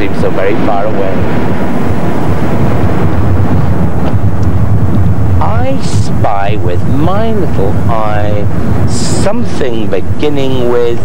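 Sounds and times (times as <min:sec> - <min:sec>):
car driving noise: 0:00.0 - 0:11.0
wind buffeting microphone: 0:00.0 - 0:11.0.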